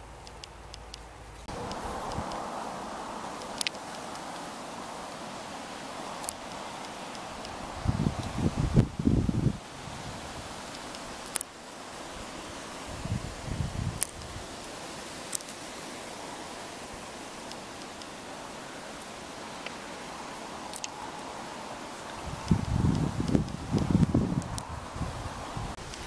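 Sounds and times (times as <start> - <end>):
steady hiss: 0.0 - 26.0
faint sharp clicks: 0.2 - 2.4, 3.4 - 4.5, 10.7 - 11.8, 14.0 - 14.3, 15.3 - 15.6, 19.6 - 19.8, 20.7 - 21.0.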